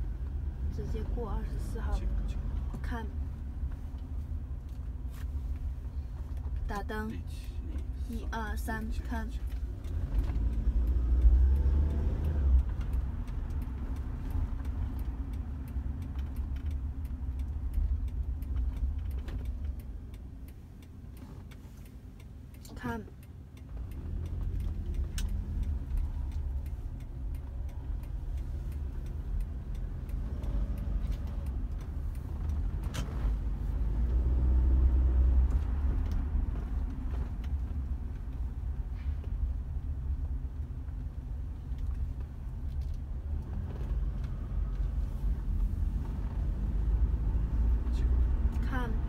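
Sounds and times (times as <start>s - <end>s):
car engine and tyre rumble: 0.0s - 49.0s.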